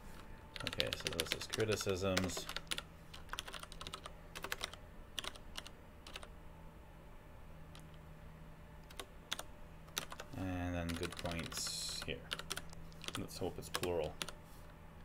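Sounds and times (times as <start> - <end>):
computer keyboard typing: 0.5 - 6.3, 8.8 - 14.4.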